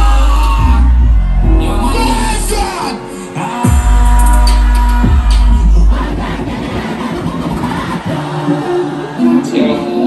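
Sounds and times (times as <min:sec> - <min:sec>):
dancehall music: 0:00.0 - 0:10.0.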